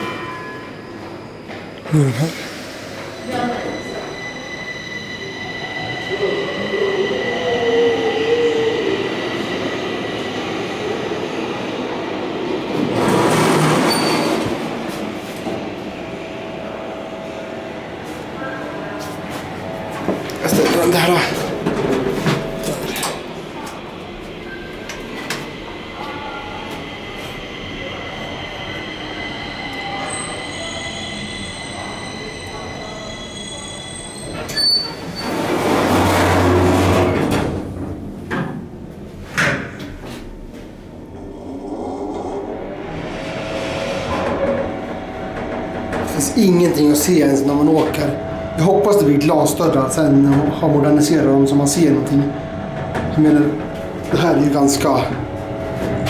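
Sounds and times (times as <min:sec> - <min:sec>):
elevator whining: 0:02.8 - 0:39.1, 0:40.4 - 0:56.0.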